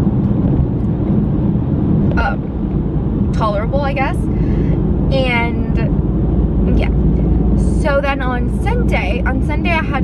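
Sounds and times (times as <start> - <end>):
low road rumble in car cabin: 0.0 - 10.0.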